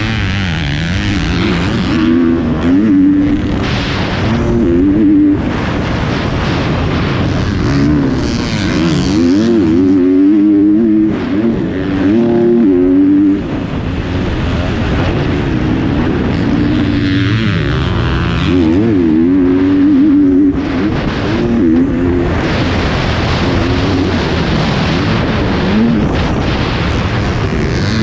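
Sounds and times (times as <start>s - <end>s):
motocross bike engine revving: 0.0s - 28.0s
wind rushing: 0.0s - 28.0s.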